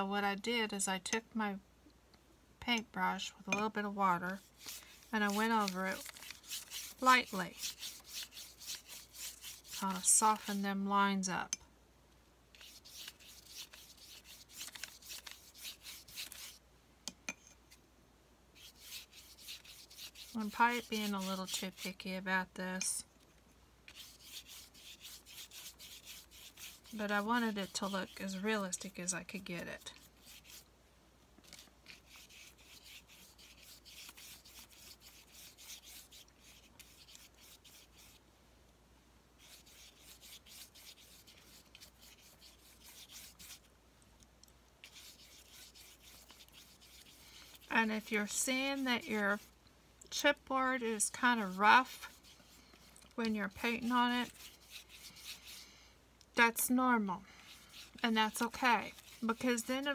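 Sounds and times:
paintbrush scrubbing on chipboard: 3.5s - 10.7s, 12.5s - 16.6s, 18.6s - 22.2s, 23.9s - 30.7s, 31.4s - 38.2s, 39.4s - 43.7s, 44.8s - 49.5s, 50.1s - 55.7s, 56.8s - 59.9s.

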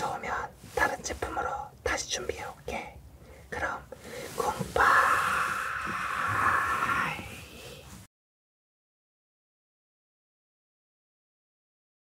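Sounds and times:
person whispering: 0.0s - 8.1s
steady hiss: 0.0s - 8.1s.

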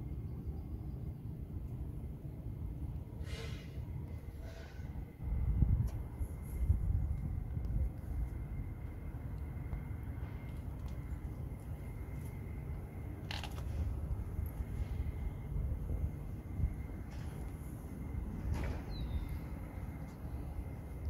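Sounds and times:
faint high whine: 0.0s - 21.0s
brief hiss: 3.2s - 3.8s
wind buffeting microphone: 4.1s - 21.0s.

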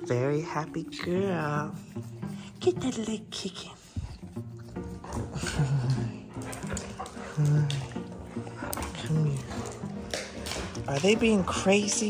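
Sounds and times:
background music: 0.0s - 12.0s
dog growling: 4.8s - 12.0s.

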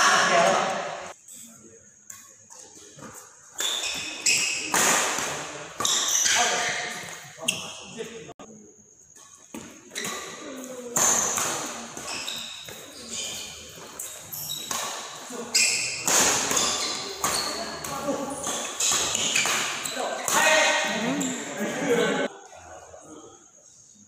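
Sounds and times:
shoes squeaking on floor: 2.5s - 4.9s, 5.8s - 8.0s, 9.2s - 21.6s
racket hitting shuttlecock: 3.5s - 7.2s, 9.5s - 12.8s, 13.8s - 20.9s
players calling out: 15.3s - 22.3s.

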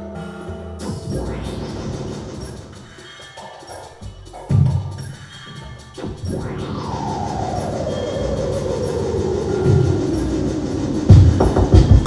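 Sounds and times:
noisy synth drone: 0.0s - 12.0s
heavy kick drum beats: 9.8s - 12.0s.

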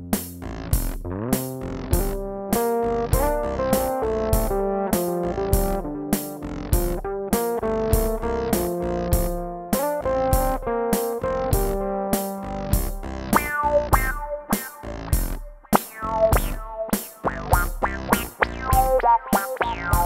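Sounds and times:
drum machine beat: 0.0s - 20.0s
electric bass groove with effects: 0.0s - 20.0s.

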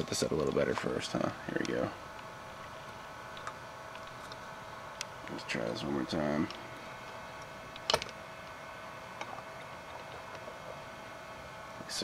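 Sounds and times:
faint room hum and hiss: 0.0s - 12.0s.

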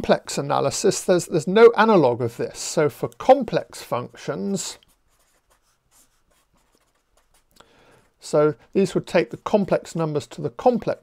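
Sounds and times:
marker pen scratching on paper: 2.4s - 11.0s.

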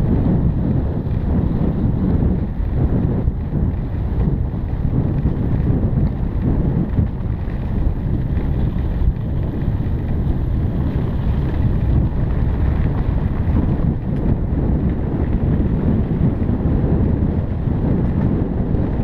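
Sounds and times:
bike tyres on dirt trail: 0.0s - 19.0s
wind buffeting microphone: 0.0s - 19.0s.

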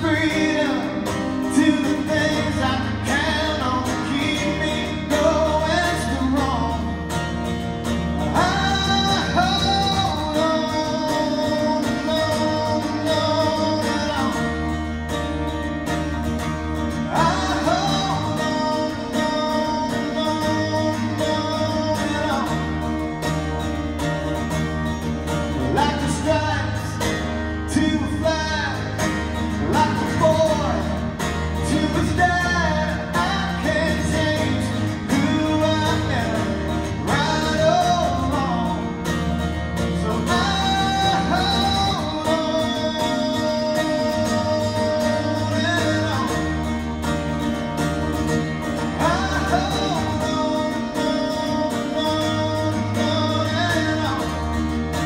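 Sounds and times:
person singing: 0.0s - 7.3s, 8.0s - 15.0s, 16.8s - 23.1s, 25.4s - 47.2s, 48.6s - 55.0s
acoustic guitars strummed: 0.0s - 55.0s.

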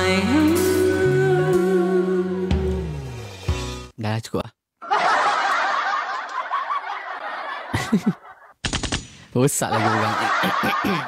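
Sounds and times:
backing music: 0.0s - 4.0s
many overlapping snickering laughs: 4.8s - 8.5s, 9.7s - 11.0s.

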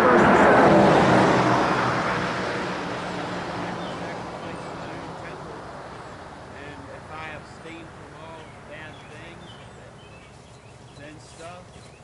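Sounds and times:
car passing by: 0.0s - 9.4s.

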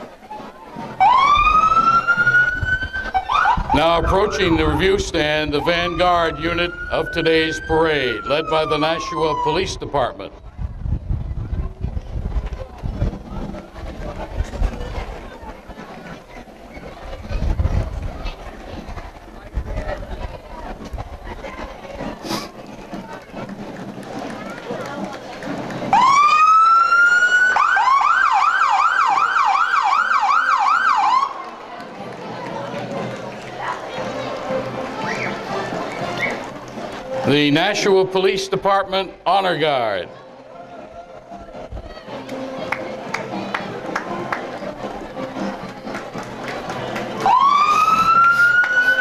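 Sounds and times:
street and crowd noise: 0.0s - 49.0s
police siren wailing and yelping: 1.0s - 4.6s, 5.6s - 10.0s, 26.0s - 31.3s, 47.2s - 49.0s.

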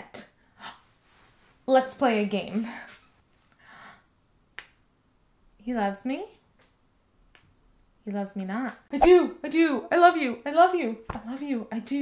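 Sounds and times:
soft rustle: 0.8s - 2.1s.

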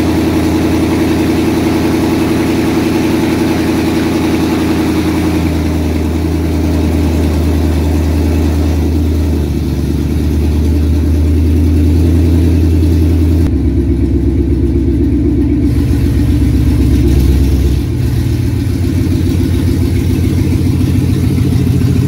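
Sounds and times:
car engine idling loud and deep: 0.0s - 22.0s.

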